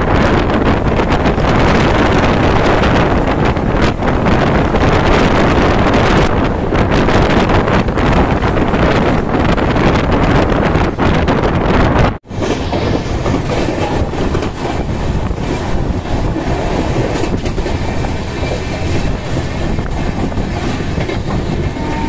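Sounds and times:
rushing air: 0.0 - 22.0
train wheels rumbling on rails: 0.0 - 22.0.

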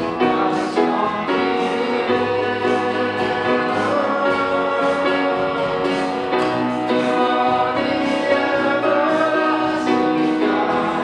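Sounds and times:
acoustic guitar: 0.0 - 11.0
piano: 0.0 - 11.0
voices singing: 0.0 - 11.0.

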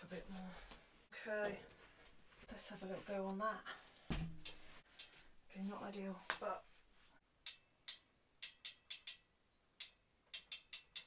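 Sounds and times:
bicycle hub ratchet clicking: 7.4 - 9.2, 9.8 - 11.0.

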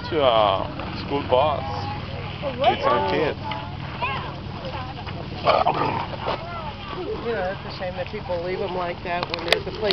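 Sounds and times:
people's voices: 0.0 - 9.9.

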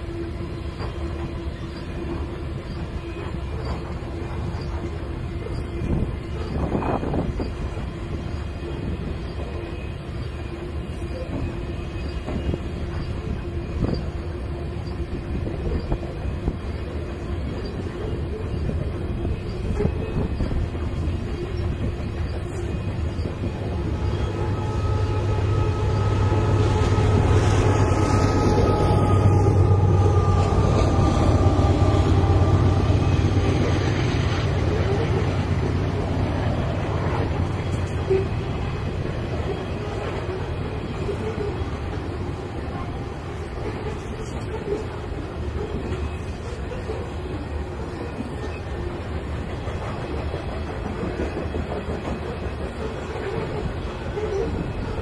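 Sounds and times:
train wheels clattering on rail: 0.0 - 25.0, 25.9 - 55.0
diesel locomotive engine hum: 0.0 - 55.0.

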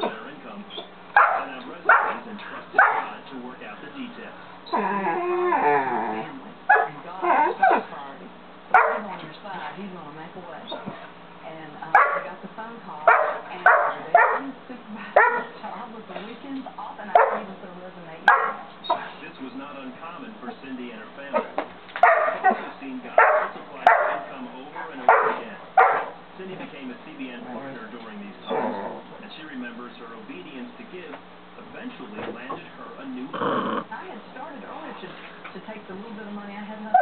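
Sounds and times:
dog barking: 1.2 - 2.2, 2.8 - 3.2, 6.7 - 7.9, 8.7 - 9.1, 11.9 - 12.4, 13.0 - 14.5, 15.2 - 15.6, 17.1 - 17.5, 18.3 - 19.0, 21.4 - 24.3, 25.0 - 26.2
dog whining: 4.6 - 7.9, 28.4 - 29.1, 33.3 - 33.9.

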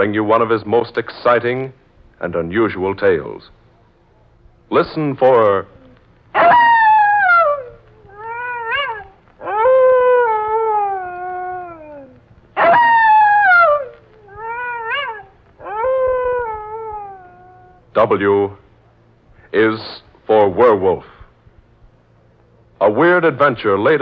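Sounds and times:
wolf-like howling: 5.6 - 17.9.

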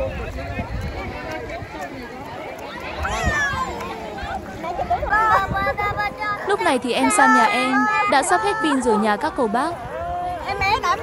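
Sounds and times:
voices talking: 0.4 - 11.0.

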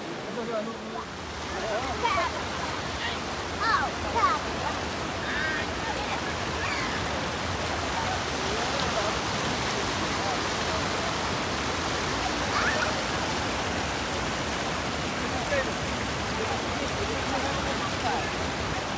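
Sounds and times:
river water rushing over rocks: 0.0 - 18.9.

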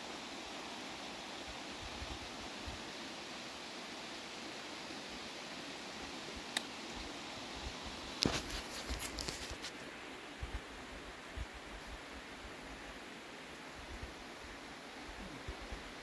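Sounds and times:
creek water running: 0.0 - 16.0
faint click: 6.5 - 6.7.

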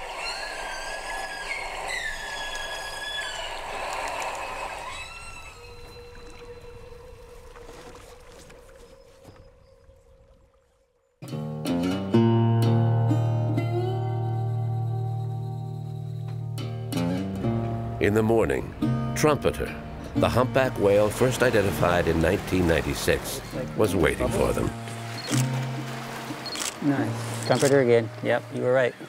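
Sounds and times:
humpback whale call: 0.0 - 8.4
music with low sustained notes: 11.2 - 29.0.

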